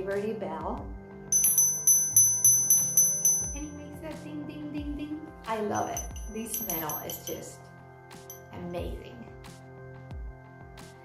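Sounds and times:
small metal bell ringing: 1.3s - 3.8s, 5.7s - 7.5s, 8.2s - 8.5s.

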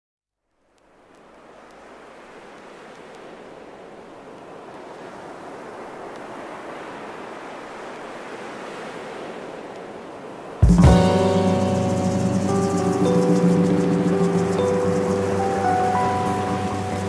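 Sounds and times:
steady rushing noise: 10.6s - 17.0s.

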